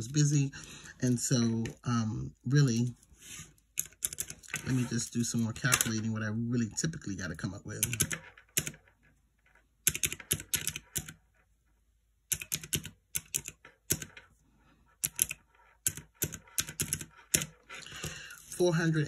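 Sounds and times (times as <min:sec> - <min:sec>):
calculator keys clicking: 0:03.8 - 0:04.6, 0:07.8 - 0:08.8, 0:09.9 - 0:11.2, 0:12.3 - 0:14.2, 0:15.0 - 0:17.6.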